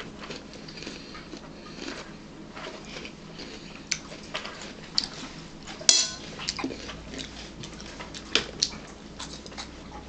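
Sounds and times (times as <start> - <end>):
celery crunching while chewed: 0.0 - 9.8.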